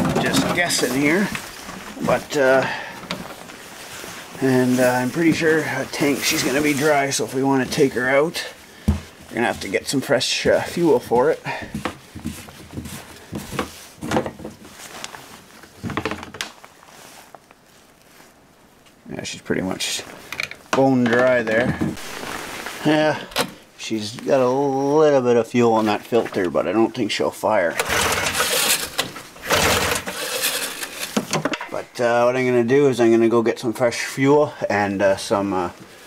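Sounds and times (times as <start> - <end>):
rustling and scraping handling noise: 0.0 - 36.0.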